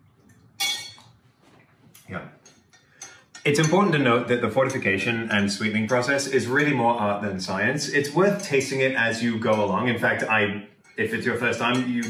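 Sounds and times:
utensil clinking against glass: 0:02.5 - 0:05.0.

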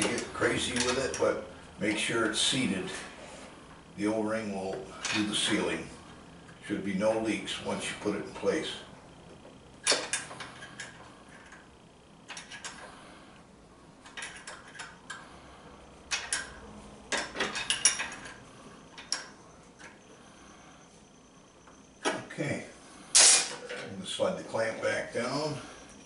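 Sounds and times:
wrench clinking on metal: 0:16.1 - 0:18.4.

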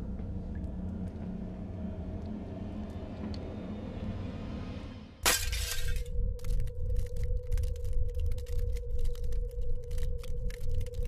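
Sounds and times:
steady low ringing tone: 0:00.0 - 0:04.6, 0:05.2 - 0:11.0
low rumbling ambience: 0:00.0 - 0:11.0
glass shattering: 0:05.2 - 0:06.1.

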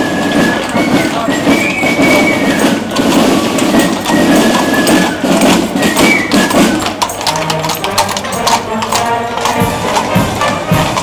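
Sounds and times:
carriage wheels rumbling on cobbles: 0:00.0 - 0:11.0
hooves clip-clopping: 0:00.0 - 0:11.0.

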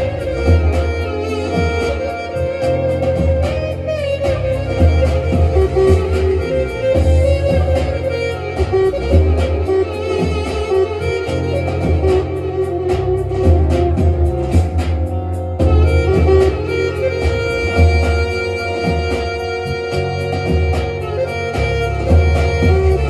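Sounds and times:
deep pulsing bass: 0:00.0 - 0:23.0.

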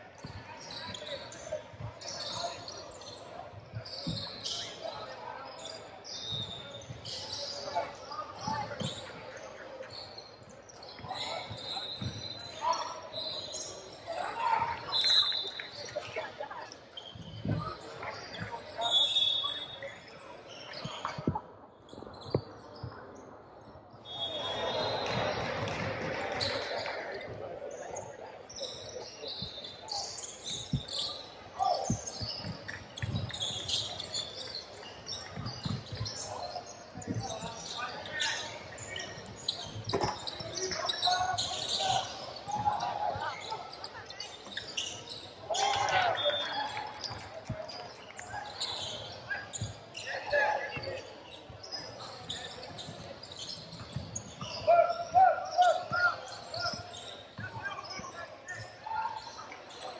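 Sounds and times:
sneaker squeaks: 0:00.1 - 0:59.9.

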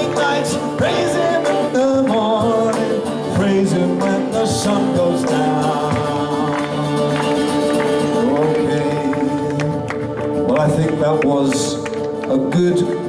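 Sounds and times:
people singing: 0:00.0 - 0:10.0
acoustic guitar strumming: 0:00.0 - 0:13.0.

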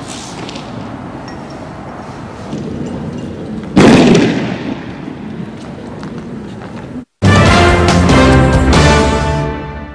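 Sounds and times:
loud blast: 0:03.8 - 0:05.3.

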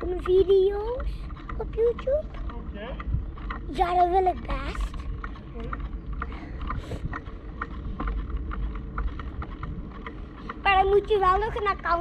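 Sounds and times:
jogging footsteps on brick: 0:00.0 - 0:12.0
wind rumble: 0:00.0 - 0:12.0.

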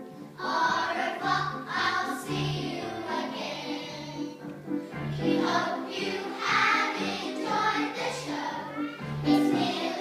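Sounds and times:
musical accompaniment: 0:00.0 - 0:10.0
group singing: 0:00.4 - 0:04.2, 0:05.2 - 0:08.7, 0:09.3 - 0:10.0.

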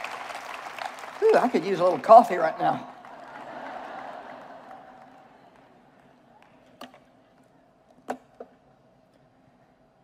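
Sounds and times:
audience applause: 0:00.0 - 0:06.5.

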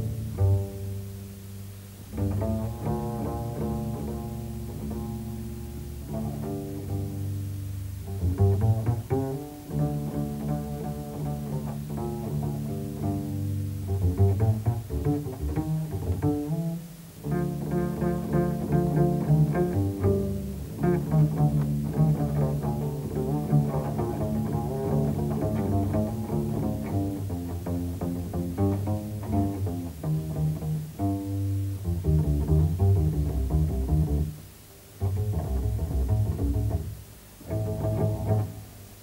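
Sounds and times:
plucked double bass: 0:00.0 - 0:39.0.

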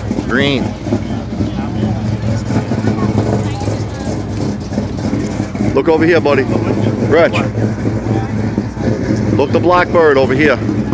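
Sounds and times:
car engine idling: 0:00.0 - 0:10.9.

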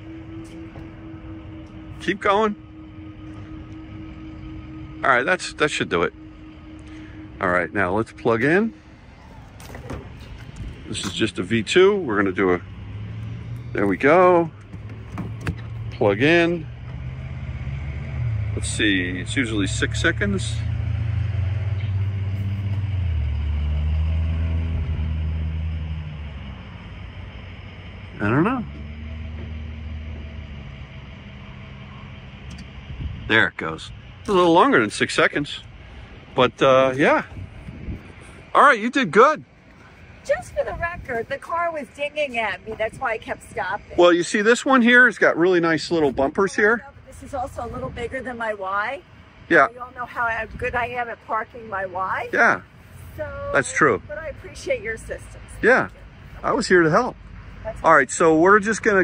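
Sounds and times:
low electric hum: 0:00.0 - 0:53.4
higher electric tone: 0:00.0 - 0:59.0
wind on microphone: 0:32.6 - 0:33.4, 0:37.0 - 0:38.5.

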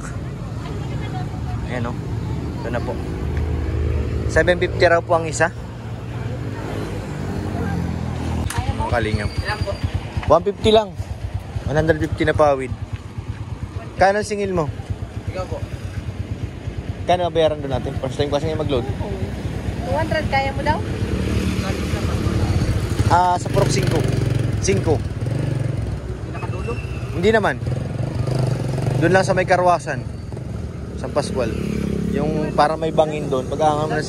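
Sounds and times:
motorcycle engine running: 0:00.0 - 0:34.0.

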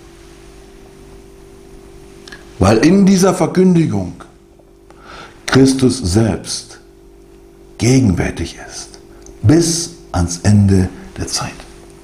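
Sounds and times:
background hiss: 0:00.0 - 0:12.0
faint low hum: 0:00.0 - 0:12.0.

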